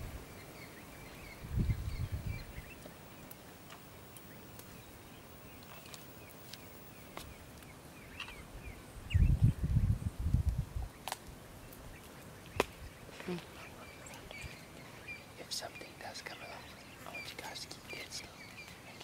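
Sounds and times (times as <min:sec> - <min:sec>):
low muffled noise burst: 0:00.0 - 0:10.9
small birds chirping: 0:00.0 - 0:19.0.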